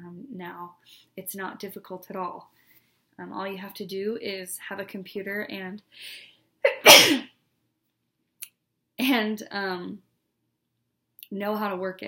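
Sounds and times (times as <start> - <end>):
woman sneezing loudly: 6.7 - 7.3.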